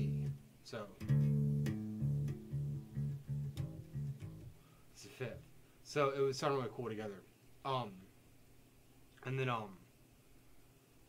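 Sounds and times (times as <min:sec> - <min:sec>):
electric bass plucked notes: 0:00.0 - 0:00.4, 0:01.0 - 0:04.7.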